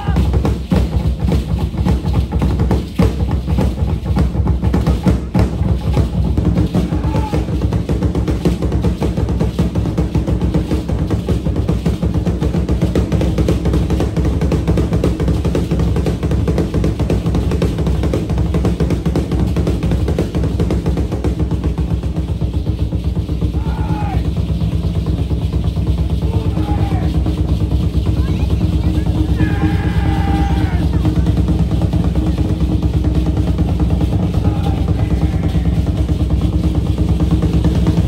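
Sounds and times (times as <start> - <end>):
fast drumming: 0.0 - 38.0.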